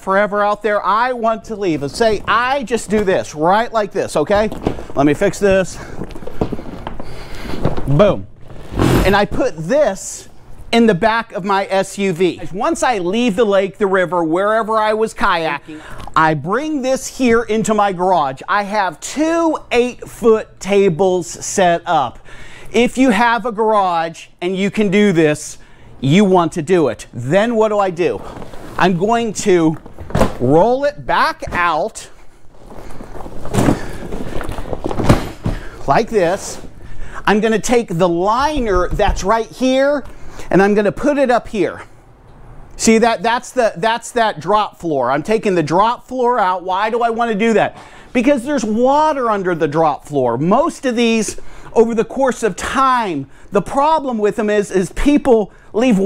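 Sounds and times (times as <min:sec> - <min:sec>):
heavy fabric rustling and scraping: 0:04.1 - 0:09.5
kayak fabric rustling and dragging: 0:08.4 - 0:09.2.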